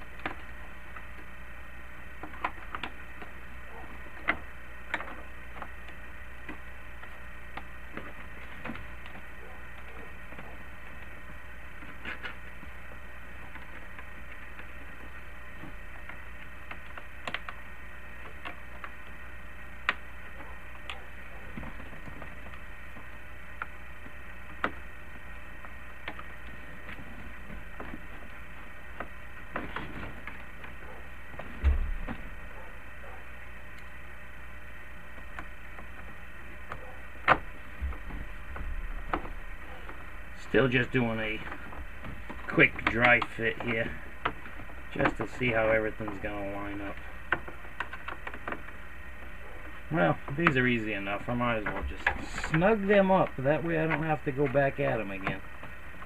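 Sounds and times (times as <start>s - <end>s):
background hum: 0.0s - 56.0s
heavy thump: 31.6s - 32.2s.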